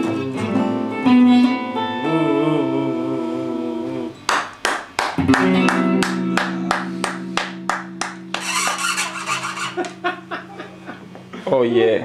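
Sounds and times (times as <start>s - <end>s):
rough noisy sound: 8.4s - 10.0s.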